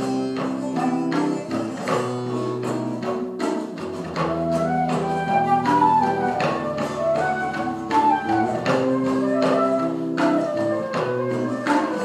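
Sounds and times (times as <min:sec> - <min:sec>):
classical guitar: 0:00.0 - 0:12.0
hand drum strokes: 0:00.0 - 0:12.0
plucked lute: 0:00.0 - 0:12.0
wooden flute melody: 0:00.0 - 0:12.0.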